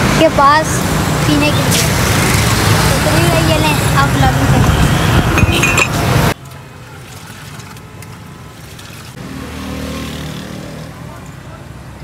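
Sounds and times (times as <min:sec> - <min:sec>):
roadside traffic rumble: 0:00.0 - 0:12.0.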